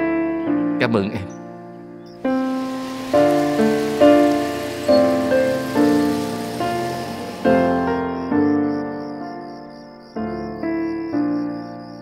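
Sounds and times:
slow piano music: 0.0s - 12.0s
steady hiss: 2.2s - 8.2s.

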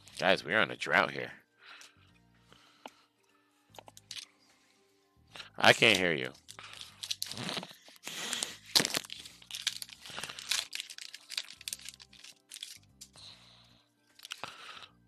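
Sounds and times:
faint background music: 0.0s - 15.0s
foil wrapper crinkling and tearing: 5.8s - 13.1s, 14.2s - 14.6s.

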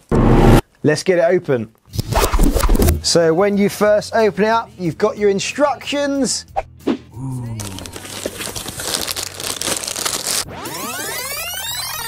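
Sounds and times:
paper and cardboard rustling: 7.6s - 10.4s.

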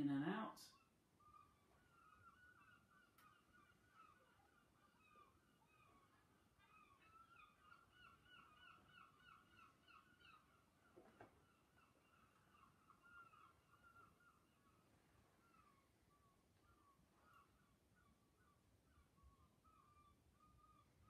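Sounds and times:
faint bird chirps: 0.0s - 21.0s.

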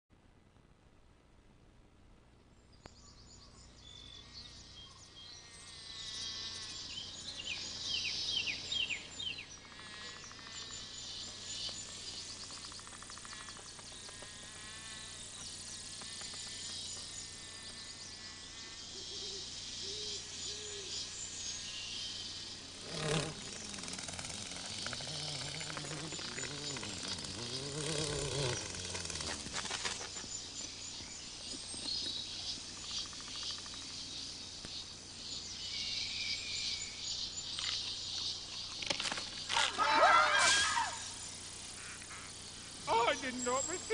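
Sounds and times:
bird calls: 2.6s - 43.9s
insects chirping: 2.6s - 43.9s
low buzzing swooping in pitch: 22.4s - 29.7s.

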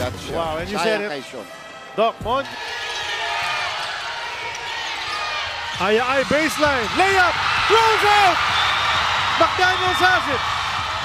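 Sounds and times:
crowd shouting: 1.6s - 11.0s.

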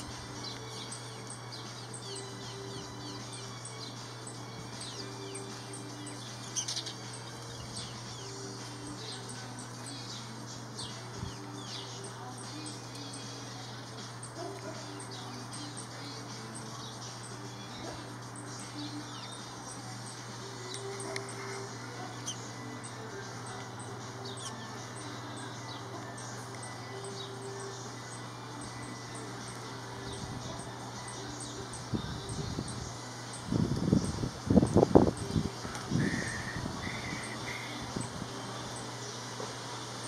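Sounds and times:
sparrows chirping: 0.0s - 40.0s.

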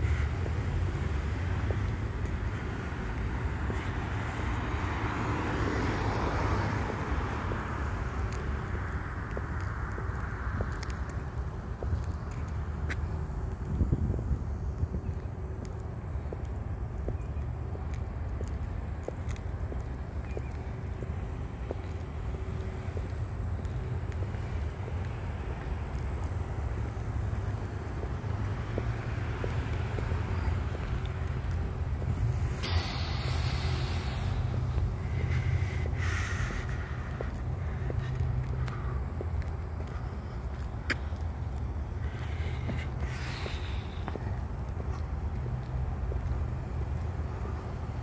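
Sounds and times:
low rumble of road traffic: 0.0s - 48.0s
short hissing noises: 32.5s - 38.0s.

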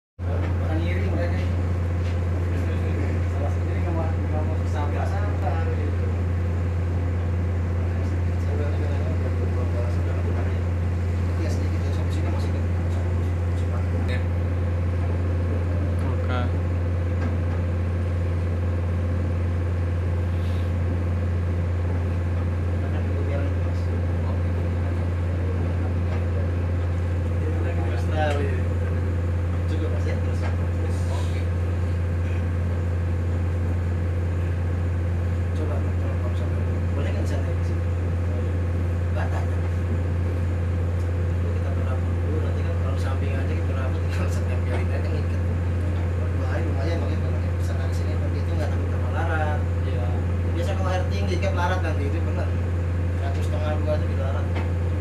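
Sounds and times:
ship diesel engine drone: 0.2s - 55.0s.

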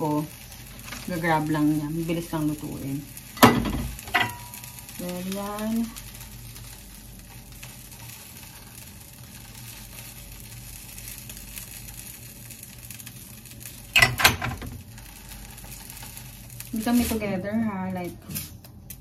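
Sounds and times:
food sizzling in a pan: 0.0s - 19.0s.

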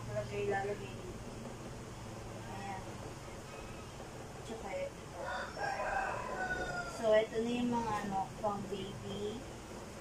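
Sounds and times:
rooster crowing: 3.4s - 4.0s, 5.2s - 7.3s.

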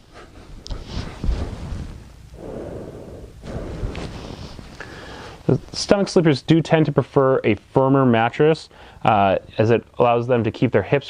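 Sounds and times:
clothes rustling on mattress: 0.7s - 2.3s, 3.4s - 5.0s.

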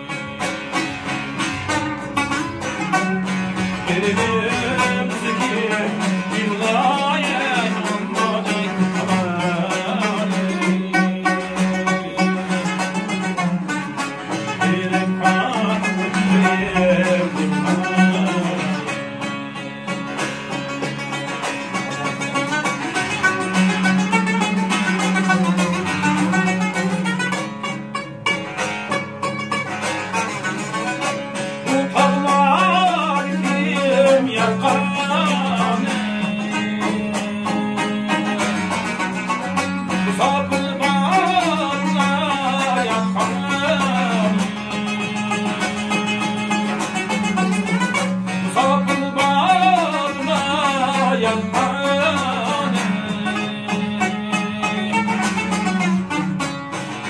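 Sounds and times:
man singing: 0.0s - 2.1s, 3.2s - 26.7s, 31.6s - 56.2s
plucked lutes playing folk tune: 0.0s - 57.0s.

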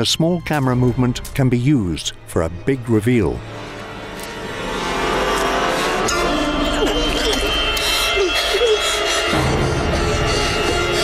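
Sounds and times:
droning horror soundtrack: 0.8s - 11.0s.

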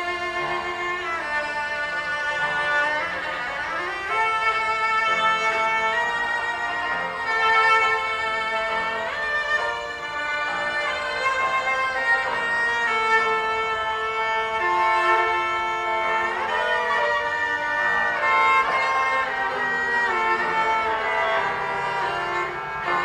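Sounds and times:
bowed cello melody: 0.0s - 23.0s
piano accompaniment: 0.0s - 23.0s.

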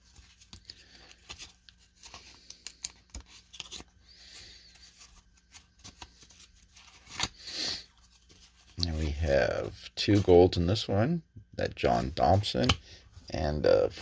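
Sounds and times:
cards rustling and clicking: 0.0s - 8.8s, 12.2s - 12.8s.

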